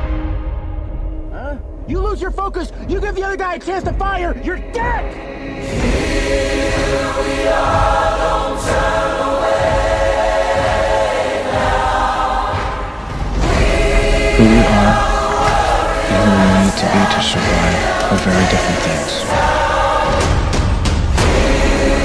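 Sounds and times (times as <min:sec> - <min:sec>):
choir singing sustained chords: 0:05.2 - 0:22.0.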